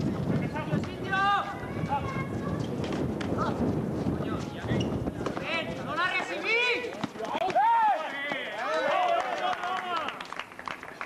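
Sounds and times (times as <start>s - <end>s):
voices shouting and calling out: 0.3s - 10.1s
footsteps on court: 2.0s - 9.0s.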